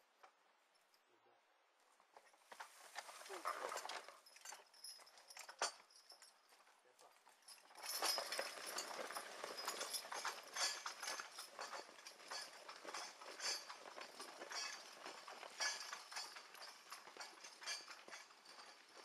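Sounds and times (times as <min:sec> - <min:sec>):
harness and plow frame clatter: 0:02.2 - 0:19.0
horse hoofbeats: 0:08.0 - 0:19.0.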